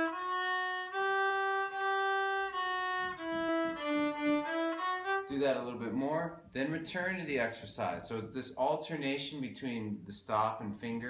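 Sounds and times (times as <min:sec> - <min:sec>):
bowed fiddle scale: 0:00.0 - 0:06.1.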